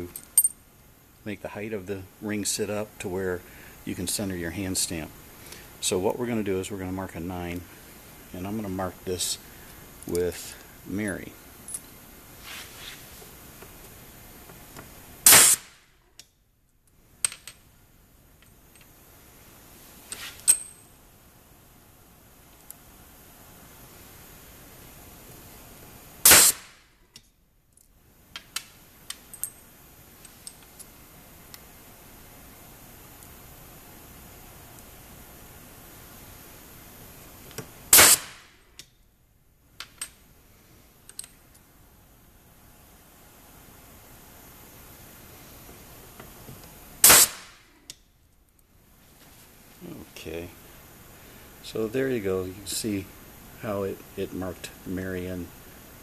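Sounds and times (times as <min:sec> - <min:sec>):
pneumatic hammer blow on metal: 0:15.2 - 0:15.8, 0:26.2 - 0:26.8, 0:37.9 - 0:38.4, 0:47.0 - 0:47.6.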